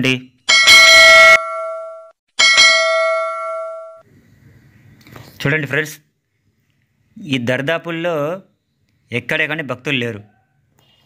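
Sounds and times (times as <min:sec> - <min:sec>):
bell ringing: 0:00.5 - 0:04.0.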